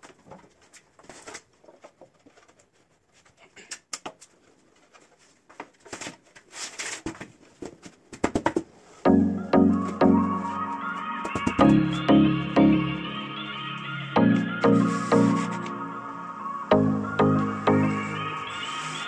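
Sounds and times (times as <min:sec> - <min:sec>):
background music: 0:09.1 - 0:19.0.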